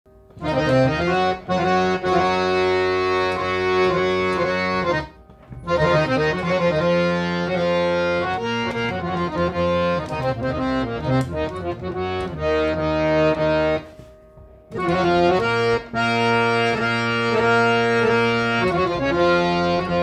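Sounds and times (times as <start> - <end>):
harmonium playing held chords: 0.1 - 20.0.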